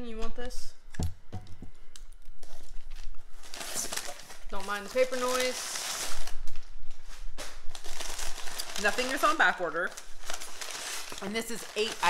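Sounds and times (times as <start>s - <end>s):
packing paper rustling: 1.9s - 12.0s.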